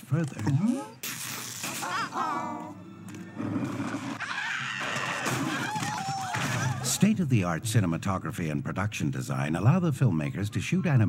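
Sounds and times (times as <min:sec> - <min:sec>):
film soundtrack music: 0:01.6 - 0:05.6.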